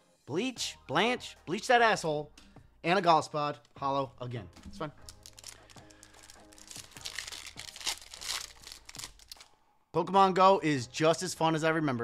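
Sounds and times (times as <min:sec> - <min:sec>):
foil wrapper tearing and crinkling: 0:05.0 - 0:09.5.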